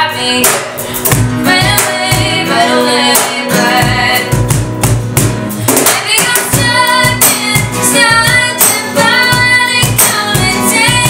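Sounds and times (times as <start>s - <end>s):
woman singing: 0.0s - 4.7s, 5.6s - 11.0s
cajon beat: 0.0s - 11.0s
strummed acoustic guitars: 0.0s - 11.0s.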